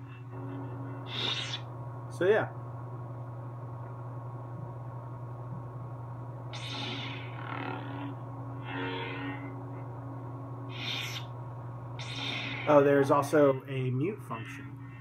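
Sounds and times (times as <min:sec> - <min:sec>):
lightsaber blade hum: 0:00.0 - 0:01.7, 0:06.5 - 0:10.0, 0:10.6 - 0:11.4, 0:12.0 - 0:15.0
lightsaber swing whooshes: 0:01.1 - 0:01.6, 0:06.6 - 0:07.3, 0:12.0 - 0:12.8.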